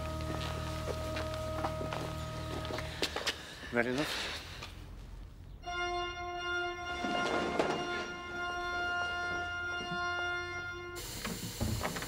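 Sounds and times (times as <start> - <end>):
church organ chord: 0.0 - 2.8, 5.6 - 11.2.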